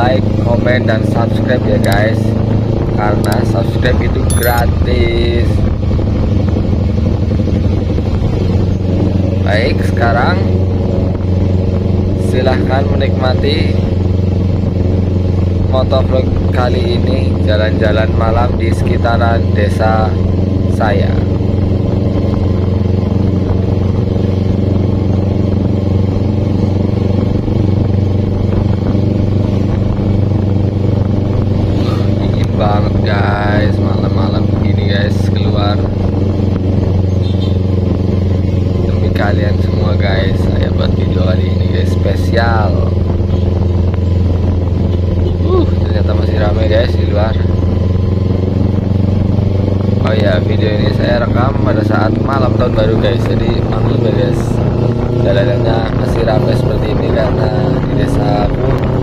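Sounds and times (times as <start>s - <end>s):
motorcycle engine cruising steadily: 0.0s - 59.0s.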